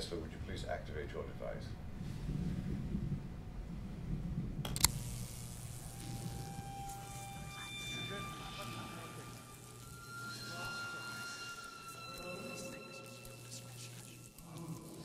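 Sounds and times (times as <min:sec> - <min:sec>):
low steady hum: 0:00.0 - 0:15.0
eerie sustained tones: 0:04.9 - 0:15.0.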